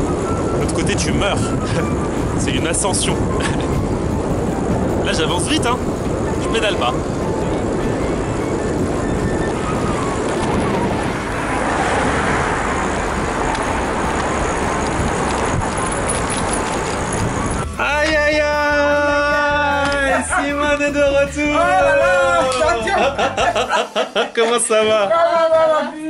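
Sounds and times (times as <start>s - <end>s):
wind rushing over microphone: 0.0s - 18.4s
road and traffic noise: 0.0s - 18.7s, 21.6s - 24.6s.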